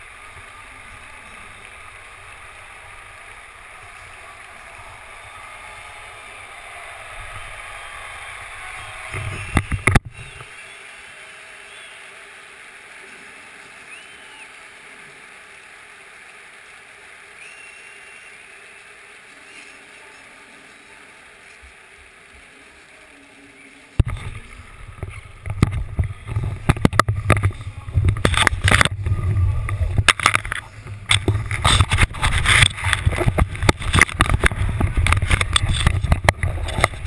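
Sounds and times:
low open-air hiss: 0.0s - 37.0s.

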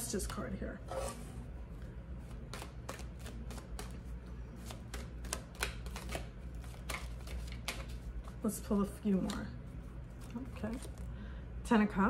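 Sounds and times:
cards shuffled by hand: 2.2s - 8.4s, 10.1s - 11.1s.

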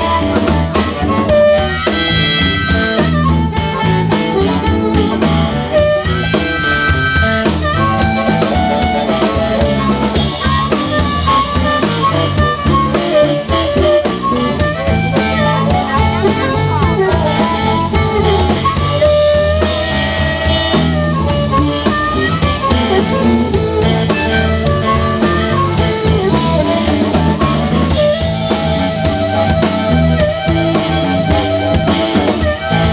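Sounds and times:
blues harmonica solo: 0.0s - 32.9s
electric bass and drum kit: 0.0s - 32.9s.

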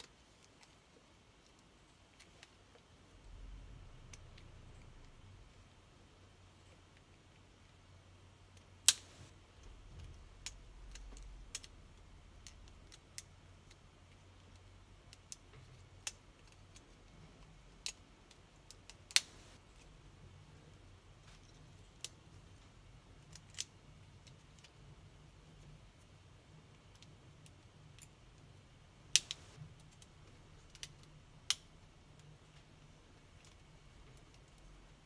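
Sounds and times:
faint low hum: 0.0s - 35.0s
plastic clicks and snaps: 17.8s - 19.6s, 29.1s - 32.3s.

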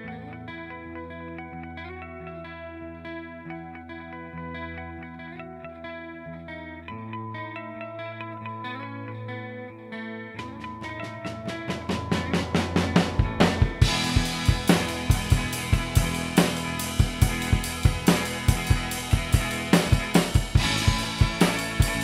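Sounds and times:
drum kit: 10.4s - 22.0s
rock band playing: 10.4s - 22.0s.

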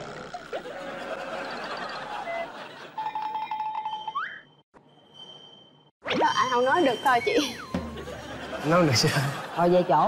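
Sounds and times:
rising whistle: 3.9s - 7.8s
steady beeping tone with ticks: 6.3s - 7.8s.

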